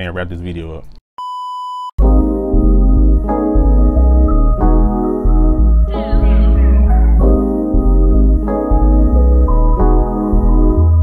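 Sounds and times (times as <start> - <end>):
loud music with deep bass: 2.0 - 11.0.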